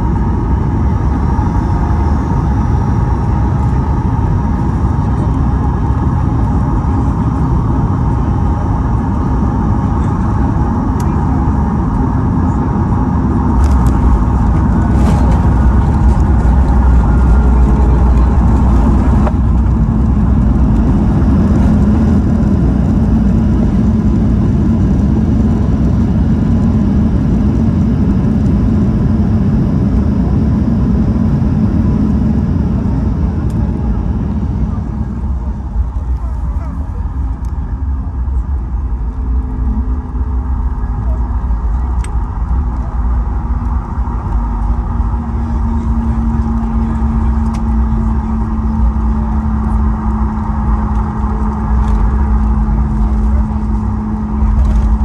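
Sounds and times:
jet engine roar in cabin: 0:00.0 - 0:55.0
runway rollout rumble: 0:00.0 - 0:55.0.

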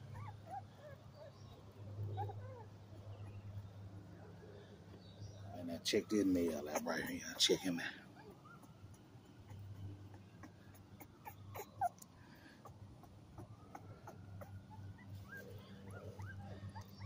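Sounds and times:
puppy whimpering and squeaking: 0:00.0 - 0:03.5, 0:06.3 - 0:07.4, 0:08.2 - 0:17.0.

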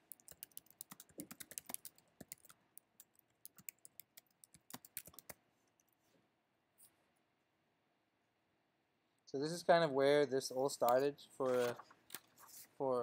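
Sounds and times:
typing on computer keyboard: 0:00.0 - 0:05.4.

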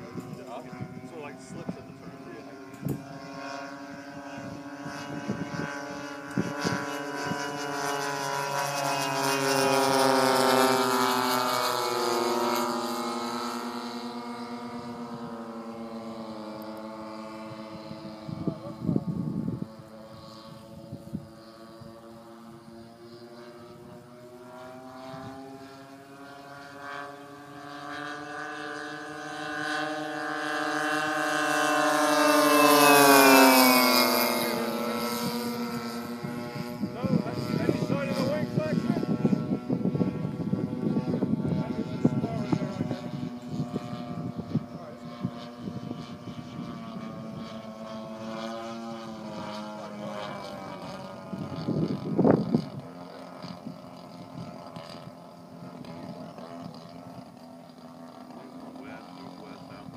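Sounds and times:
model airplane engine drone: 0:00.0 - 0:59.9.

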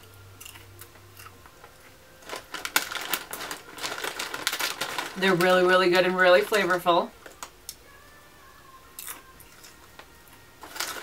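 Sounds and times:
plastic snack bag crinkling: 0:02.2 - 0:07.4, 0:10.6 - 0:11.0.

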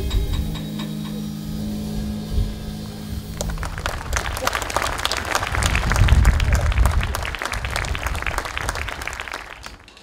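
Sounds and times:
drum and cymbal hits: 0:00.0 - 0:03.8.

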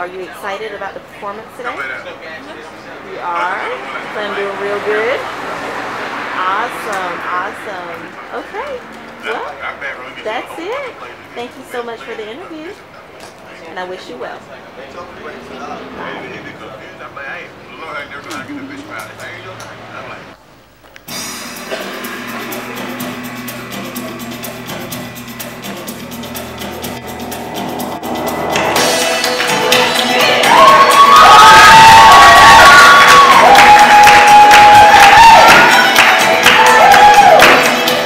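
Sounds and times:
children cheering and shrieking: 0:29.8 - 0:37.8.

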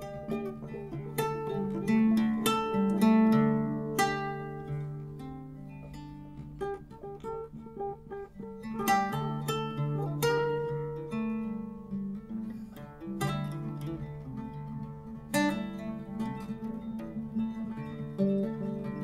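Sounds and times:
acoustic guitar picked notes: 0:00.0 - 0:19.0
strummed guitar chords: 0:00.0 - 0:19.0.

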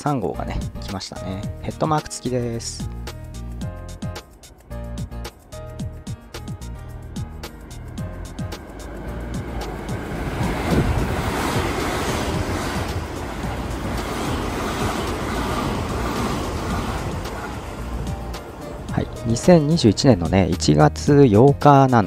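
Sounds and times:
faint background music: 0:00.0 - 0:11.2, 0:16.9 - 0:22.0
electric train passing: 0:00.0 - 0:22.0.

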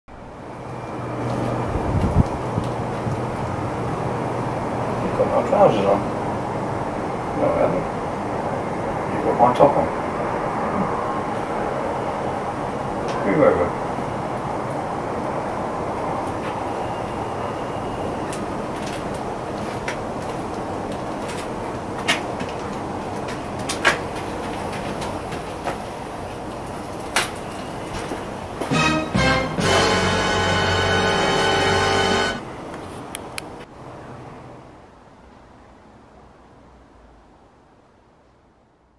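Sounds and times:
outdoor background noise: 0:00.1 - 0:38.9.

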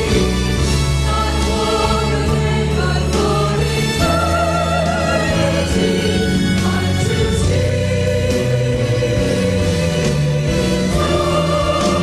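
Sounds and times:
choir singing held notes: 0:00.0 - 0:12.0
steady musical accompaniment: 0:00.0 - 0:12.0.

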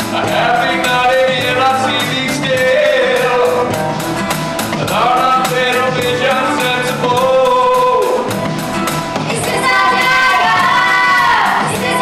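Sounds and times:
drum beat: 0:00.0 - 0:12.0
live rock band playing: 0:00.0 - 0:12.0
person singing: 0:00.1 - 0:03.8, 0:04.8 - 0:08.4, 0:09.3 - 0:12.0.

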